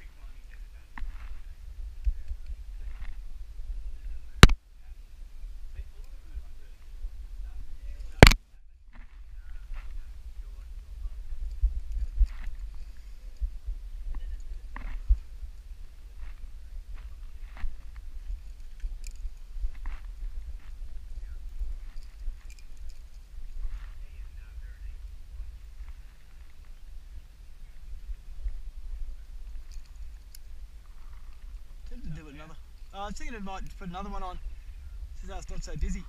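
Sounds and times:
wind rumble on microphone: 0:00.0 - 0:36.0.

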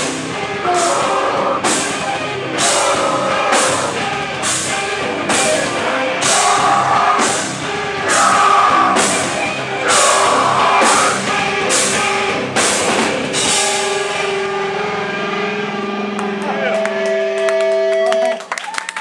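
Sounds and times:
hardcore band playing live: 0:00.0 - 0:18.4
scattered claps: 0:16.1 - 0:19.0.

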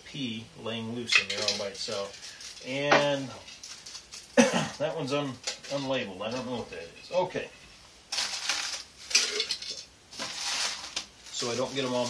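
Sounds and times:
seeds rattling in metal can: 0:01.1 - 0:04.4, 0:08.1 - 0:12.0.

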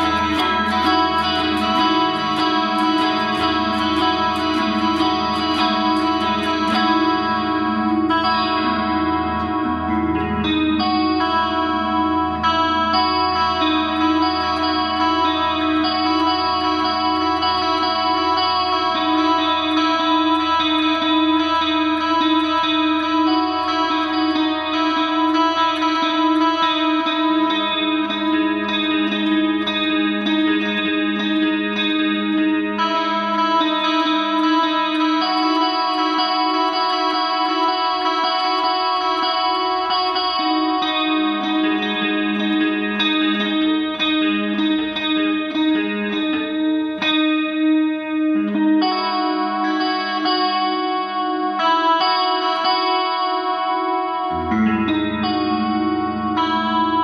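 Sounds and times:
electric guitar melody: 0:00.0 - 0:57.0.

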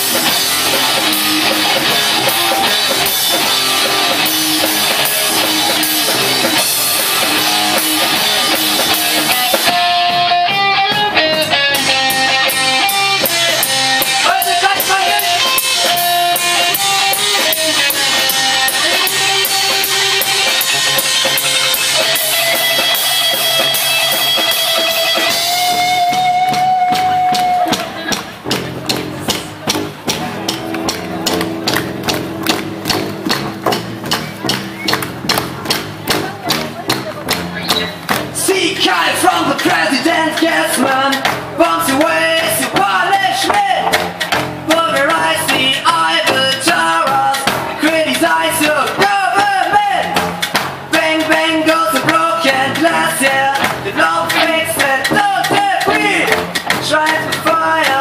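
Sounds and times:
bass guitar: 0:00.0 - 0:58.0
drum kit beat: 0:00.0 - 0:58.0
electric guitar: 0:00.0 - 0:58.0
man singing: 0:12.8 - 0:20.1, 0:38.4 - 0:44.0, 0:44.7 - 0:50.2, 0:50.9 - 0:58.0.

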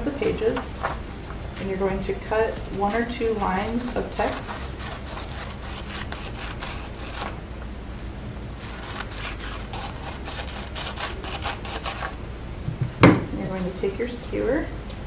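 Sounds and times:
scissors snipping paper: 0:02.8 - 0:07.4, 0:08.6 - 0:12.2.

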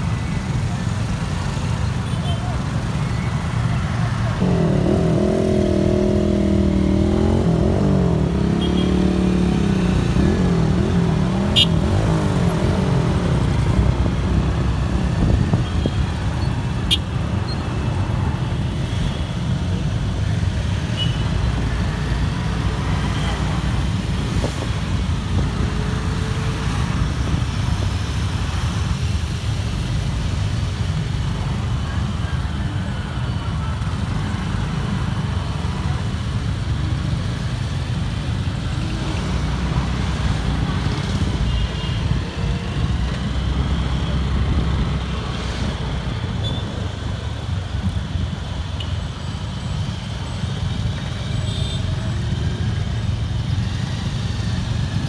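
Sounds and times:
motorcycle engines rumbling: 0:00.0 - 0:55.0.

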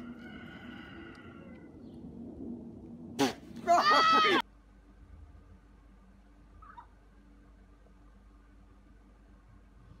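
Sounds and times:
high-pitched cry: 0:03.7 - 0:04.4
faint low hum: 0:04.5 - 0:10.0.

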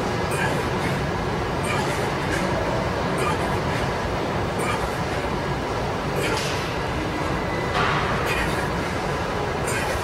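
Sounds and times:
rumbling gym background noise: 0:00.0 - 0:10.0.

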